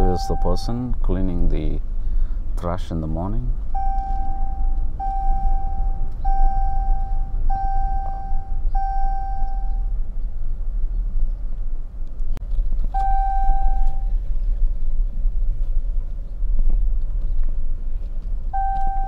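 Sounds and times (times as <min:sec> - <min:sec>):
electronic warning chime beeping: 0:00.0 - 0:00.7, 0:03.8 - 0:09.9, 0:13.0 - 0:14.1, 0:18.6 - 0:19.0
car rumble inside cabin: 0:00.0 - 0:19.0.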